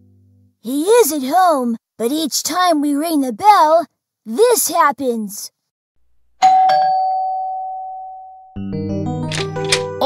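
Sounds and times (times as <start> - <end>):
ding-dong doorbell chime: 6.4 - 8.6.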